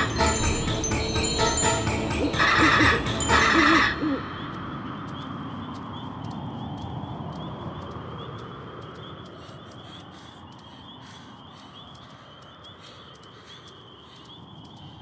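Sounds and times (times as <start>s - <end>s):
night insects chirring: 0.0s - 15.0s
owl hooting: 1.9s - 4.7s.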